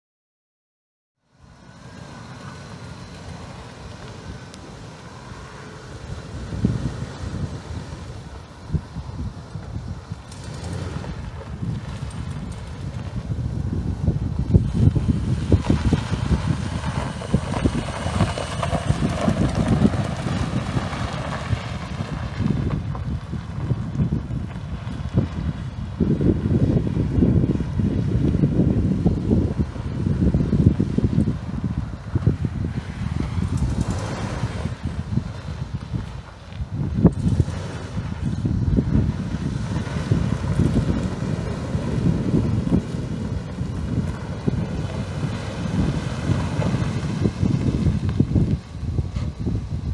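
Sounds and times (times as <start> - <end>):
pickup truck engine running: 1.5 - 49.9
wind buffeting microphone: 1.7 - 49.9.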